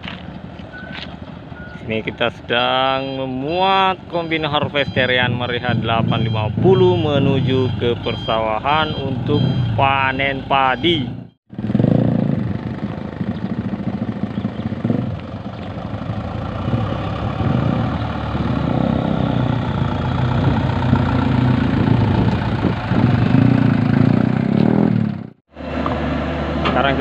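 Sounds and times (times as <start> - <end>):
diesel truck engine running: 0.0 - 27.0.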